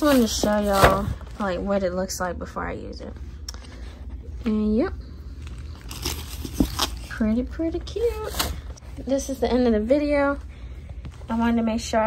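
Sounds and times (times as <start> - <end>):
plastic wrapping crinkling: 0.0 - 1.5, 5.3 - 8.8.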